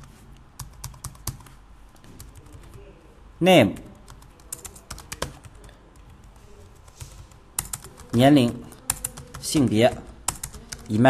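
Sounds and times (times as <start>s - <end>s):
computer keyboard typing: 0.0s - 2.8s, 3.8s - 11.0s.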